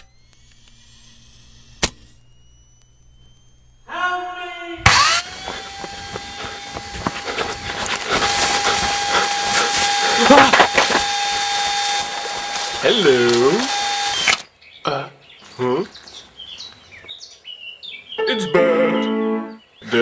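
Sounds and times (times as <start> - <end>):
sharp clicks: 0.0 - 3.9, 4.9 - 14.5
chainsaw running: 0.0 - 4.0, 4.8 - 14.5.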